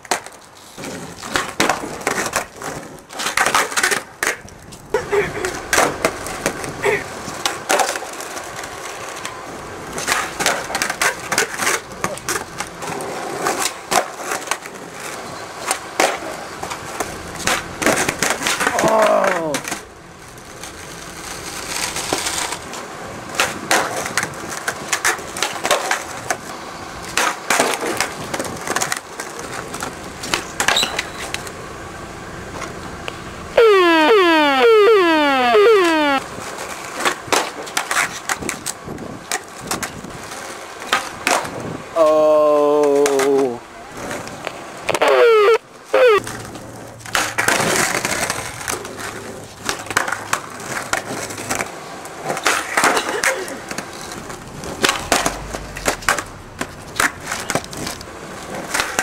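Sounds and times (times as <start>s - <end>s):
skateboard landing clacks: 0.0s - 4.6s, 5.4s - 6.8s, 46.2s - 59.0s
skateboard wheels rolling: 0.0s - 59.0s
rapid falling-pitch chirps: 33.6s - 36.2s, 45.1s - 46.2s.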